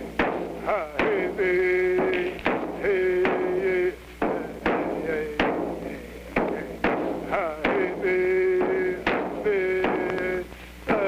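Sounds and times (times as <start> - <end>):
sharp percussion strikes: 0.0 - 11.0.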